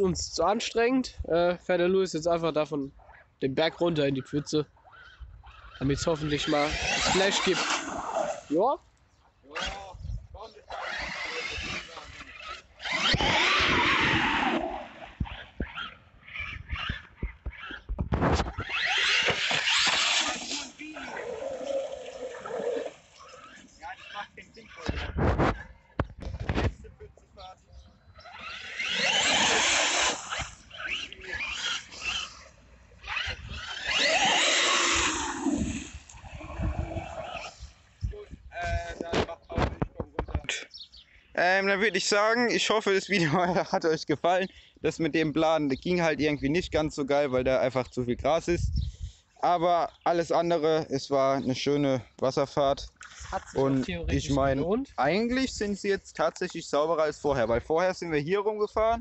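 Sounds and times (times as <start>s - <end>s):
electric motor whining: 4.9s - 8.5s, 10.6s - 24.9s, 28.2s - 37.7s.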